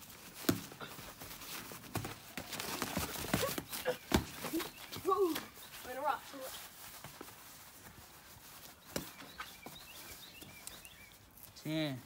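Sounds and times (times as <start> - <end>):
feet shuffling on grass: 0.0 - 12.0.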